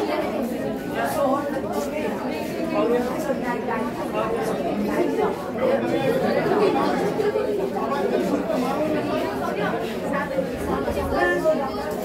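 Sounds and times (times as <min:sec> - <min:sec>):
boys chattering: 0:00.0 - 0:12.0.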